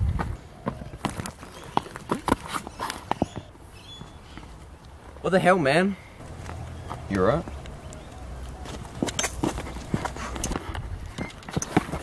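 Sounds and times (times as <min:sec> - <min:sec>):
scuffling footsteps: 0:06.2 - 0:12.0.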